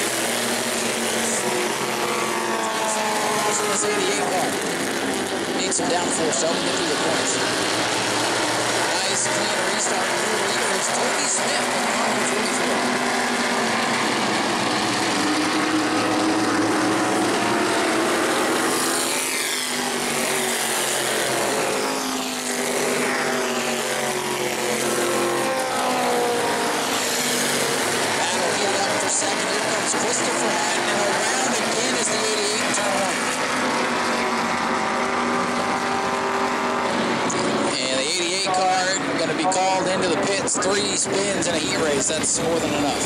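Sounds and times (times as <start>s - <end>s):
racing car engines passing: 0.0s - 43.0s.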